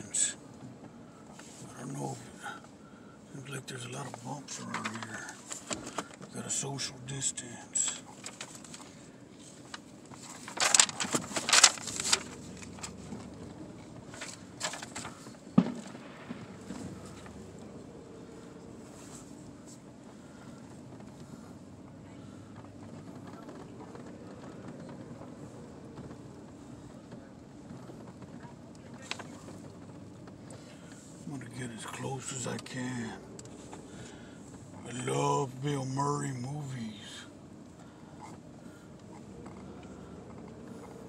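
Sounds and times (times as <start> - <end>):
car cabin low rumble: 0.0 - 41.0.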